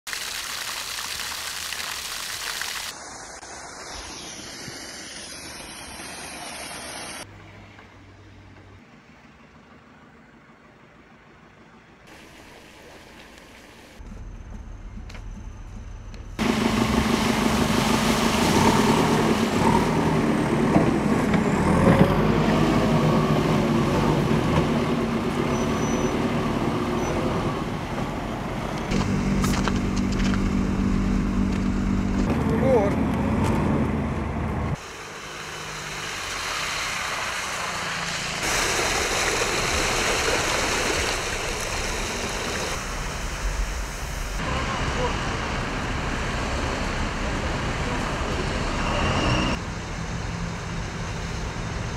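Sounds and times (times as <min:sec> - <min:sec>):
tanker truck hum: 0:06.6 - 0:51.9
heavy truck engines running: 0:14.0 - 0:36.4, 0:37.1 - 0:51.9
people talking: 0:32.3 - 0:33.1, 0:44.4 - 0:45.9.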